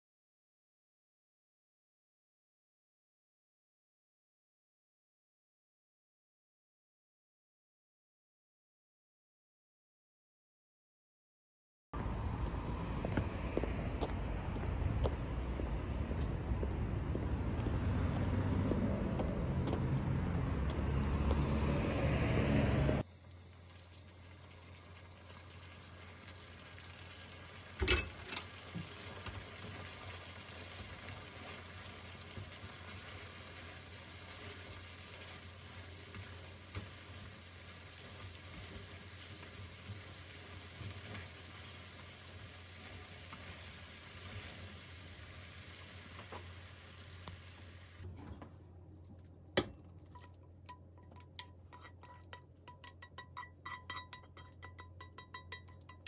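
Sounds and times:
street noise: 12.0s - 23.0s
noodles sizzling in frying pan: 23.0s - 48.0s
chopsticks stirring noodles: 49.8s - 56.0s.

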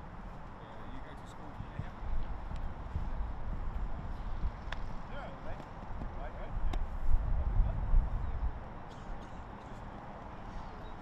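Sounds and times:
wind rumble on microphone: 0.0s - 8.7s.

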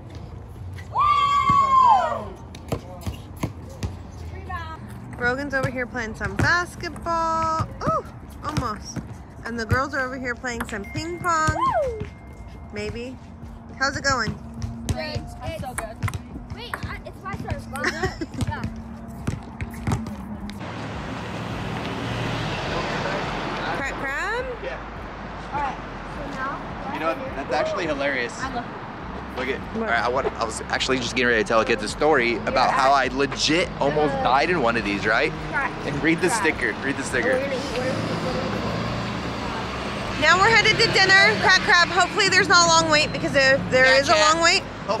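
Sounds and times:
road traffic noise: 0.0s - 45.0s
ball bouncing: 2.5s - 4.0s, 4.8s - 20.7s.

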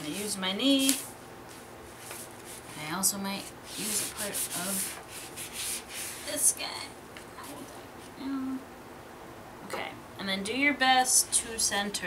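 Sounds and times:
paper sliding and rustling: 0.8s - 2.8s, 3.7s - 6.4s.

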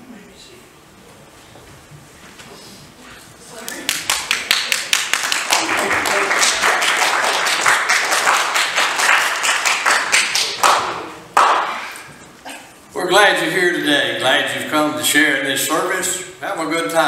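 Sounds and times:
congregation applauding: 3.7s - 12.0s.

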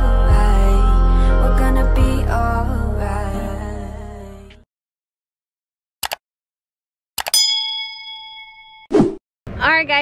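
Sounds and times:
bell-like ding: 7.3s - 8.9s
woman talking: 9.6s - 10.0s.

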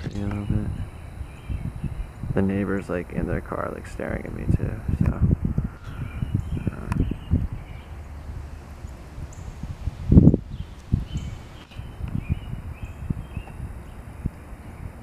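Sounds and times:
rumbling and thumps on microphone: 0.0s - 15.0s.

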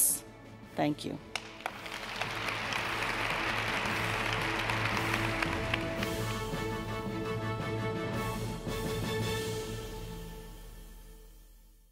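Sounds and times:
audience applauding: 1.3s - 7.0s
outro music: 1.4s - 11.2s.

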